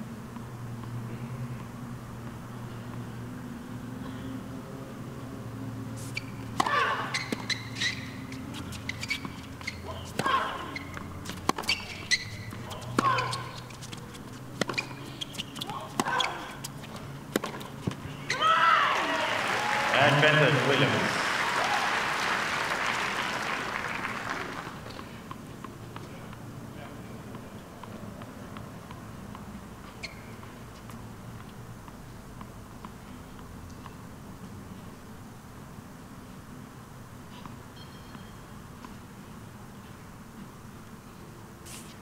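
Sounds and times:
tennis racket hitting ball: 0:06.4 - 0:18.0
crowd applauding and cheering: 0:18.9 - 0:24.9.

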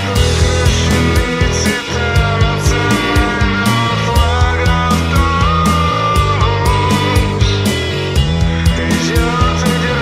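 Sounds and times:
drum strikes: 0:00.0 - 0:10.0
instrumental post-rock band: 0:00.0 - 0:10.0
gliding guitar note: 0:00.3 - 0:08.8.

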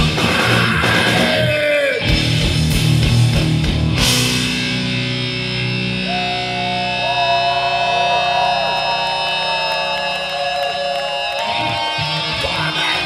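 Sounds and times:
strummed guitar chords: 0:02.0 - 0:07.7
electric guitars bending notes: 0:02.0 - 0:13.0.

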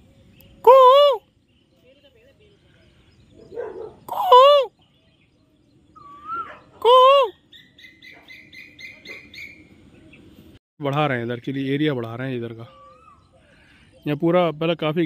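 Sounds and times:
loud arched bird calls: 0:02.7 - 0:10.4, 0:12.5 - 0:14.0
short high bird chirps: 0:04.1 - 0:09.8.

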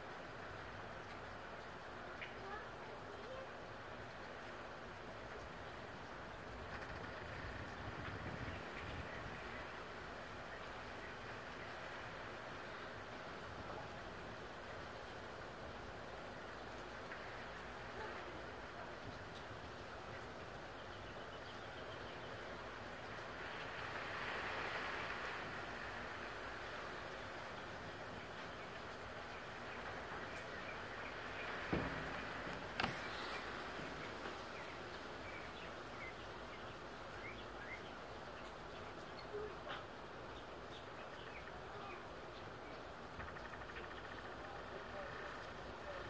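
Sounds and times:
small ticks: 0:01.0 - 0:02.5, 0:06.5 - 0:08.9.

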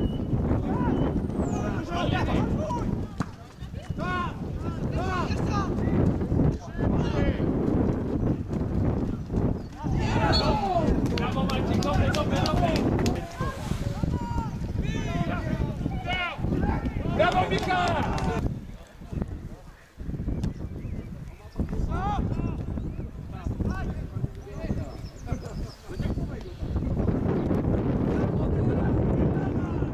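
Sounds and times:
wind buffeting microphone: 0:00.0 - 0:29.9
footballers shouting: 0:00.6 - 0:06.0, 0:09.8 - 0:18.4.

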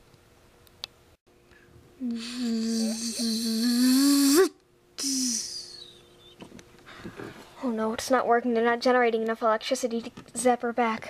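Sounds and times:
person imitating buzzing zap: 0:02.0 - 0:06.0.

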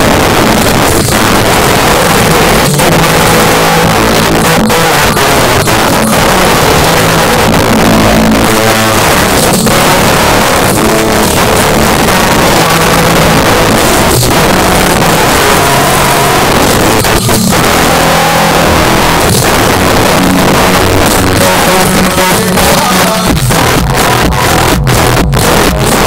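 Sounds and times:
bass line: 0:00.0 - 0:26.0.

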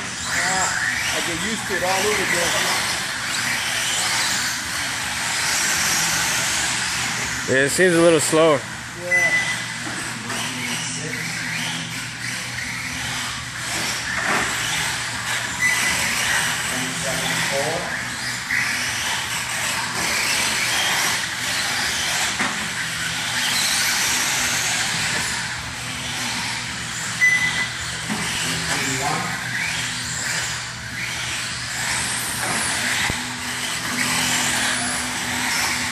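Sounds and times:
toy car motor whining: 0:00.0 - 0:35.9
short electronic beep: 0:09.1 - 0:09.6, 0:27.2 - 0:27.7.

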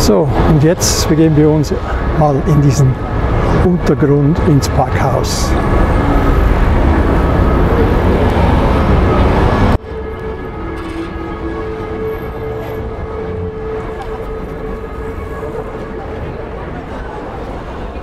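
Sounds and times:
passing traffic rumble: 0:00.0 - 0:18.0.

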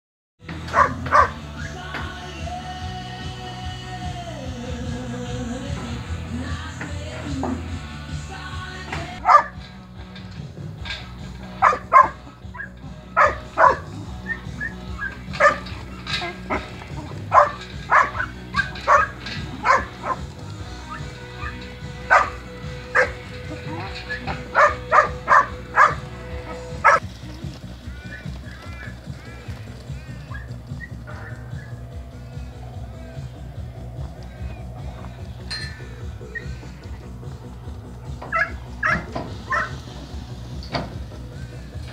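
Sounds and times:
background music: 0:00.4 - 0:41.9
dog barking: 0:00.7 - 0:01.4, 0:09.2 - 0:09.6, 0:11.6 - 0:15.6, 0:17.3 - 0:20.2, 0:21.4 - 0:27.0, 0:38.3 - 0:39.8.

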